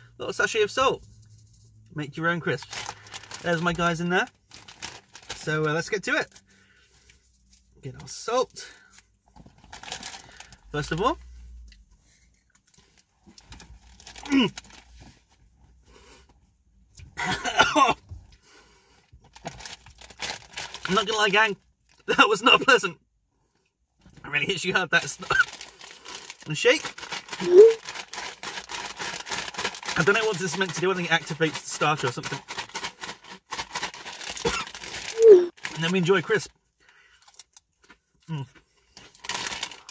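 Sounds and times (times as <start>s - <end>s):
crisp packet rustling: 2.5s - 6.4s, 8.8s - 10.9s, 12.7s - 15.3s, 19.3s - 21.5s, 25.0s - 36.4s, 39.0s - 39.9s
person speaking: 26.4s - 27.8s, 35.1s - 36.4s.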